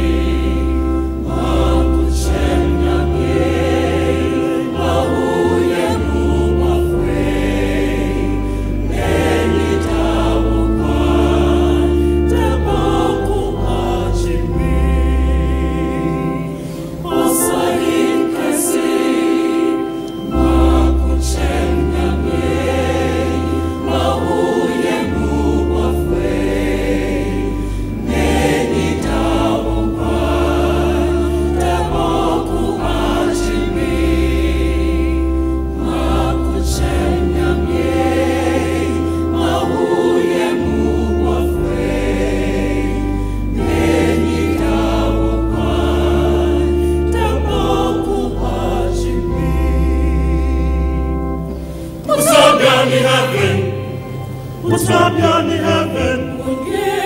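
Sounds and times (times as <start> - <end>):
gospel choir singing: 0.0 - 57.0.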